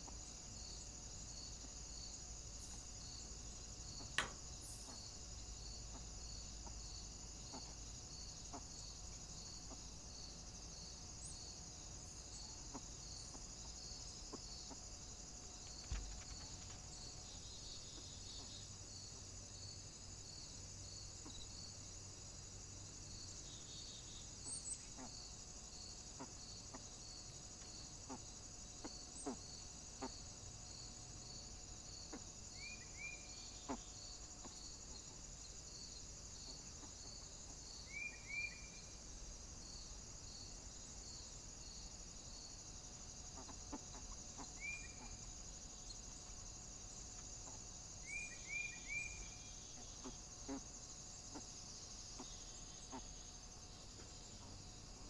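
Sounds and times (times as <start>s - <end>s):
high insect buzz: 0.0s - 55.0s.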